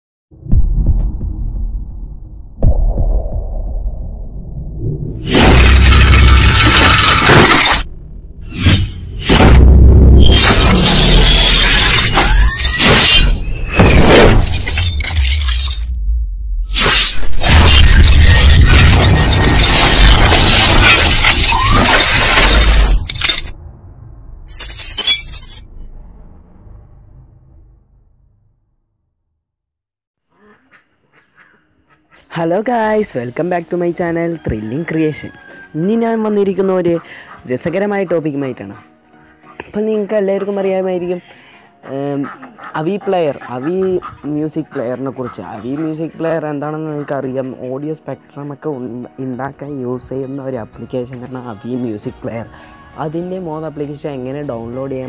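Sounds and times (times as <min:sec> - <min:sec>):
deep cinematic hits: 0:00.3 - 0:05.8, 0:07.8 - 0:10.6, 0:25.8 - 0:28.7
low rumble: 0:00.4 - 0:05.8, 0:07.8 - 0:10.3, 0:15.9 - 0:16.7, 0:25.6 - 0:28.7
glass shattering: 0:05.3 - 0:07.9, 0:10.2 - 0:16.0, 0:16.8 - 0:23.6, 0:24.5 - 0:25.8
music: 0:32.4 - 0:55.0.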